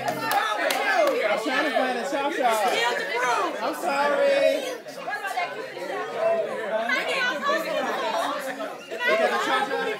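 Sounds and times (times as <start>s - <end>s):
group of people chattering: 0.0s - 9.9s.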